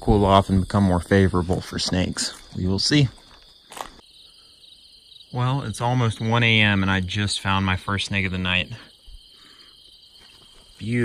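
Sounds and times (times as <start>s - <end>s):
night insects chirping: 0.0s - 11.0s.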